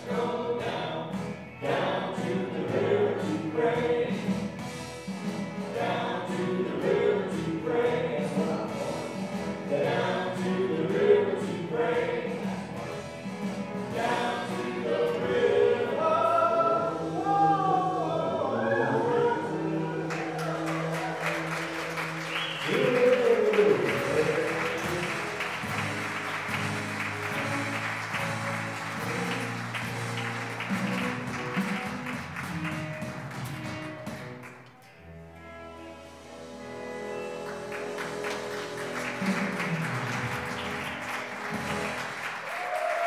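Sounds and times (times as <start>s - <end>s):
loud vocal sound: 0.0s - 4.5s, 5.7s - 12.8s, 13.8s - 25.8s
band singing and playing: 0.0s - 33.0s
applause: 20.1s - 34.7s, 37.4s - 43.0s.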